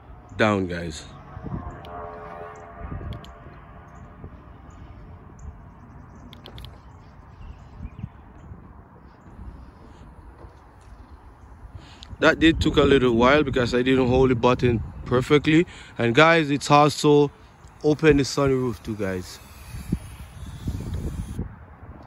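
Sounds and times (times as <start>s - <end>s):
window motors whirring: 18.0s - 21.4s.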